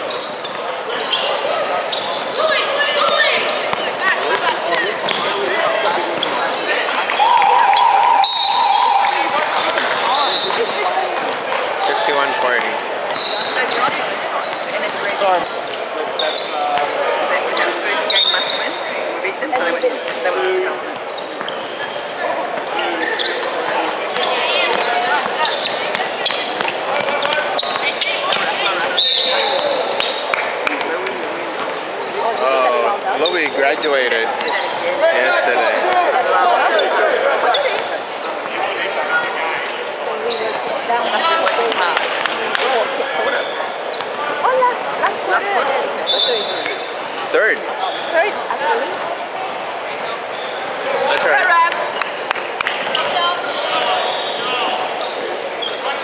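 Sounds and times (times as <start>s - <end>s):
voices of players and spectators: 0.0s - 56.0s.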